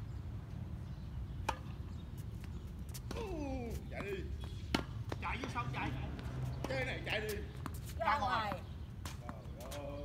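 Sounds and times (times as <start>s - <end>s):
tennis ball struck by racket: 4.7s - 5.6s.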